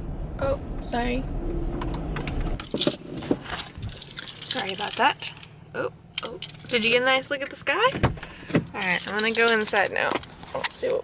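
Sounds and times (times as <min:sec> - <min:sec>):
car engine rumbling: 0:00.0 - 0:11.0
clicks and knocks inside car: 0:06.4 - 0:10.9.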